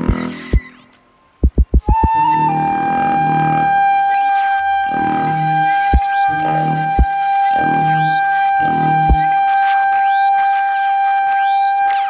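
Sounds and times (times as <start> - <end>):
flute with electronic effects: 0.0 - 12.0
short low thump: 1.4 - 2.0
low swelling accompaniment: 1.4 - 12.0.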